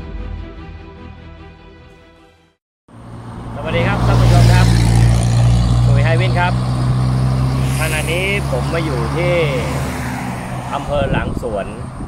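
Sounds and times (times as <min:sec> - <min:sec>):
vehicle engine humming: 0:02.9 - 0:12.0
person speaking: 0:07.6 - 0:09.9.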